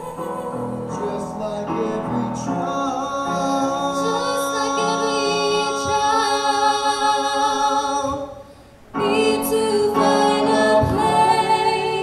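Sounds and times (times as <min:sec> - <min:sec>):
man and woman singing duet: 0:00.0 - 0:12.0.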